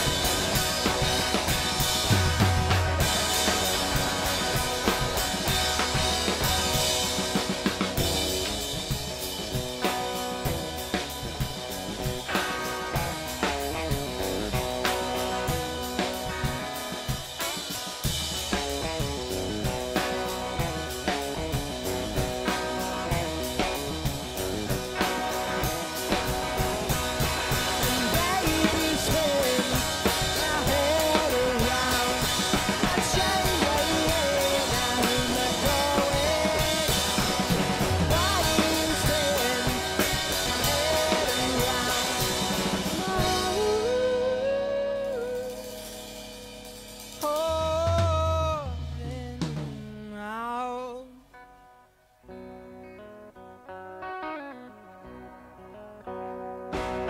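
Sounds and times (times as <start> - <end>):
drum kit: 0.0 - 51.0, 56.7 - 57.0
electric guitar: 0.0 - 57.0
person singing: 27.5 - 45.9, 47.2 - 51.3.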